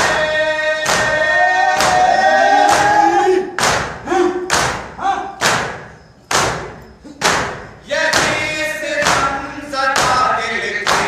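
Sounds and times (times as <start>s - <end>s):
men chanting together: 0.0s - 5.4s, 7.8s - 11.0s
men slapping chests: 0.8s - 9.4s, 10.0s - 11.0s.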